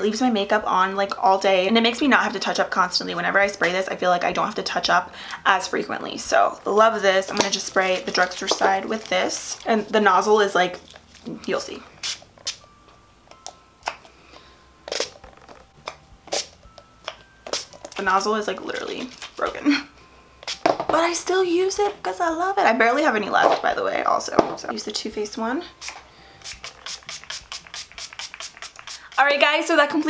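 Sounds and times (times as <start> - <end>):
spray bottle spurts: 14.9 - 15.3, 16.3 - 16.6, 25.8 - 29.3.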